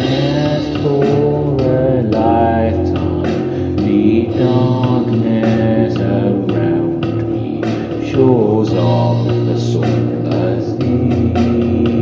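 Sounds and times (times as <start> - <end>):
drum hits: 0.0 - 12.0
instrumental metal band music: 0.0 - 12.0.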